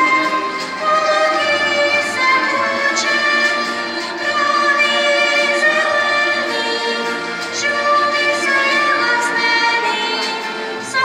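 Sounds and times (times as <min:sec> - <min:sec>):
girl singing into microphone: 0:00.0 - 0:11.0
musical accompaniment: 0:00.0 - 0:11.0.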